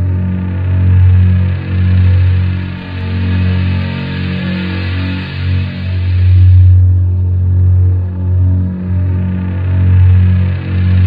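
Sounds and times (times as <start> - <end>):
distorted guitar noise: 0.0 - 11.0
heavy droning distorted note: 0.0 - 11.0.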